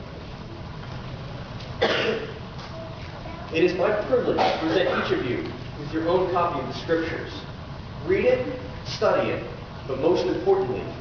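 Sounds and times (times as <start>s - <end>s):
low room hum: 0.0s - 11.0s
man coughing: 1.8s - 2.4s, 4.3s - 5.2s.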